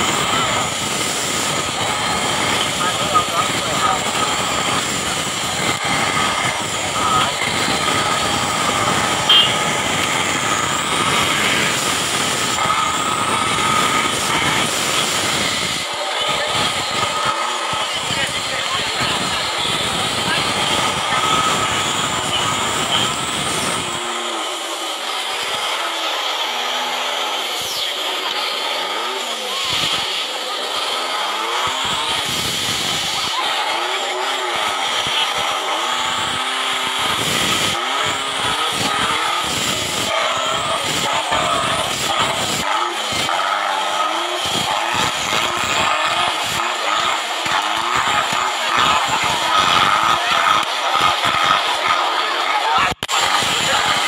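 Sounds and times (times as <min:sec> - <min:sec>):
engine revving: 0:00.0 - 0:54.0
voices in background: 0:00.0 - 0:54.0.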